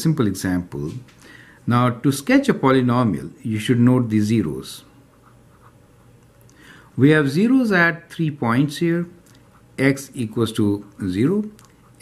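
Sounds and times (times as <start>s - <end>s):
pen scratching on paper: 5.1s - 6.1s.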